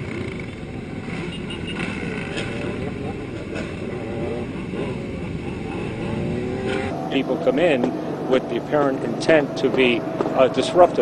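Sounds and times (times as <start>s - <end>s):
motorcycle engines revving: 0.0s - 11.0s.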